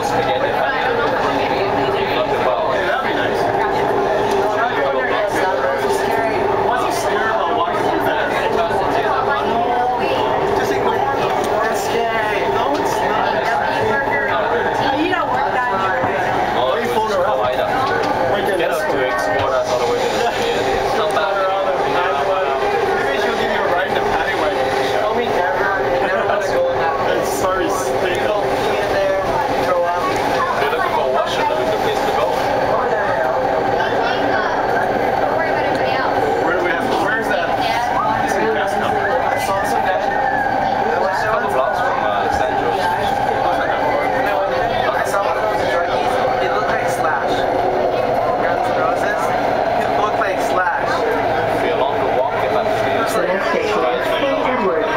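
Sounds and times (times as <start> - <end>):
indistinct passenger chatter: 0.0 - 54.9
train running noise: 0.0 - 54.9.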